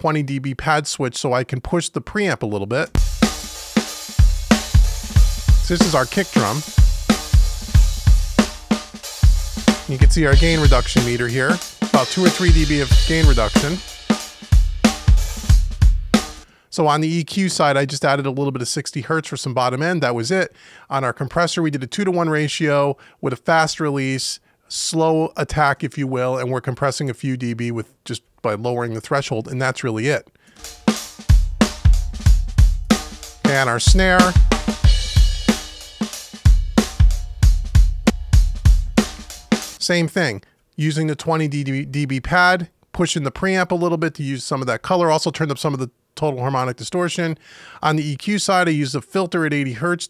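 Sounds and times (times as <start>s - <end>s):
drum kit beat: 2.9s - 16.5s, 30.6s - 39.8s
cymbals: 3.0s - 16.5s, 30.6s - 39.8s
kick drum thumps: 4.2s - 5.7s, 33.9s - 35.6s, 36.5s - 39.3s.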